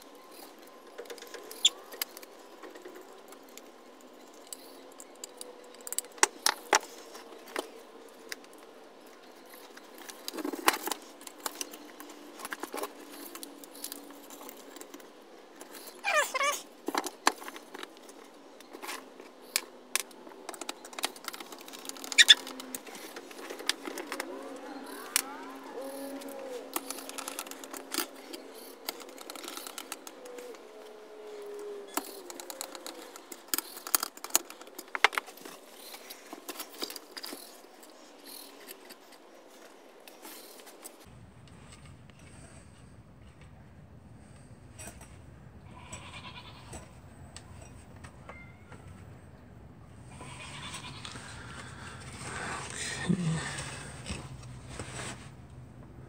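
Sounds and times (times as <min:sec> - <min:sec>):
hand tools clicking and rattling: 0:00.3 - 0:30.7, 0:31.8 - 0:41.0.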